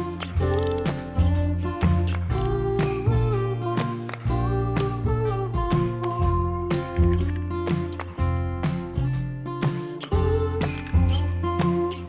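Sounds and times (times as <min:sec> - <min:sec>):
bass: 0:00.0 - 0:12.0
strummed acoustic guitar: 0:00.0 - 0:12.0.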